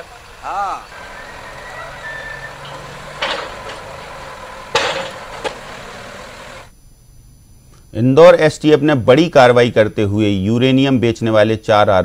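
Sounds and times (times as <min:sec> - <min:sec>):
heavy machinery working: 0:00.0 - 0:06.7
loud demolition bursts: 0:00.7 - 0:06.7.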